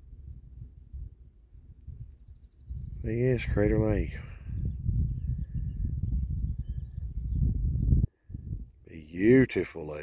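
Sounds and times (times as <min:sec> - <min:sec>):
wind buffeting microphone: 0:00.0 - 0:10.0
distant birds chirping: 0:01.5 - 0:09.9.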